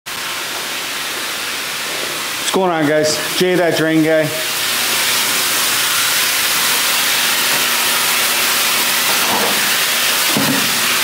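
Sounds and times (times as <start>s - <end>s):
steady hiss: 0.1s - 7.7s.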